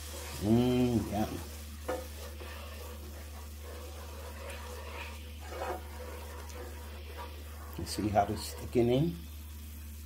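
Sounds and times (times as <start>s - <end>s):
pan sizzling: 0.0s - 10.0s
spatula stirring sauce in skillet: 0.0s - 10.0s.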